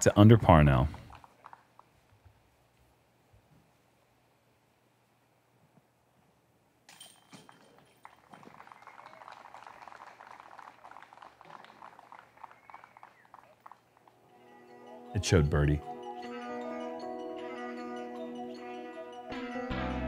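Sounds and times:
scattered applause: 0.9 - 1.9, 7.6 - 14.3
disc hitting metal chains: 6.9 - 8.2.

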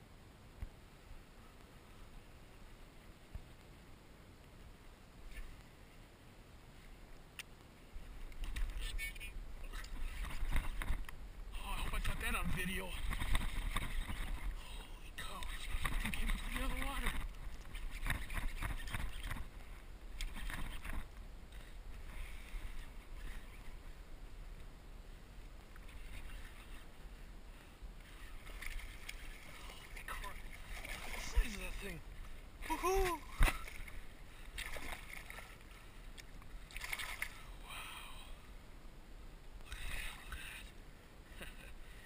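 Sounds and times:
wind rumbling on microphone: 7.8 - 37.4
water lapping: 11.7 - 24.0, 25.6 - 37.6
fish splashing at water surface: 36.7 - 37.4.

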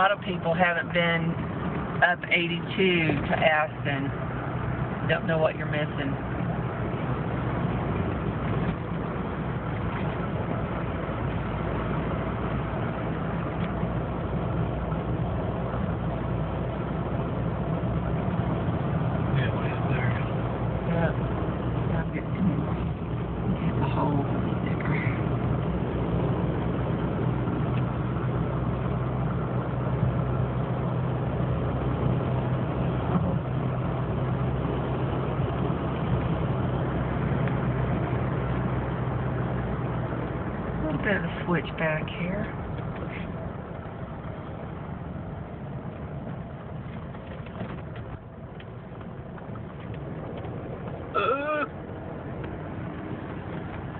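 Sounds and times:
car engine hum: 0.0 - 53.9
road noise: 0.0 - 53.9.

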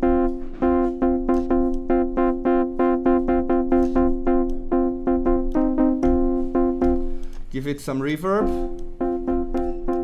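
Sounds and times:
synthesizer chord stabs: 0.0 - 10.0.

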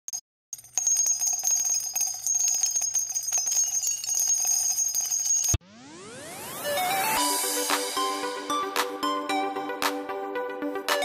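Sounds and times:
bells jangling rapidly: 0.6 - 5.6
rising tone sweep: 5.6 - 8.5.

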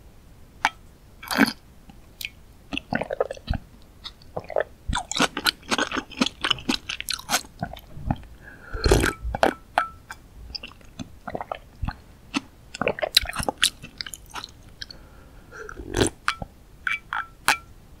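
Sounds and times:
sipping and swallowing: 2.2 - 9.6, 10.6 - 15.0, 15.6 - 17.3
loud gulp: 8.7 - 9.2.

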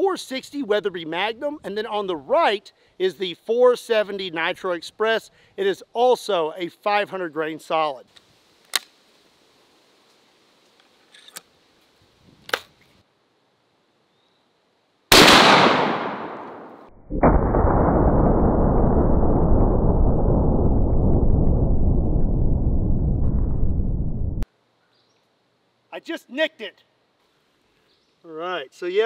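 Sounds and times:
loud rifle shot echoing: 15.1 - 18.8
slowed-down low roar: 17.0 - 24.4.

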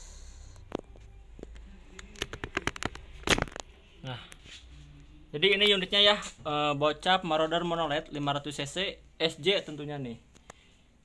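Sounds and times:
plastic clicks and knocks: 0.7 - 3.7.

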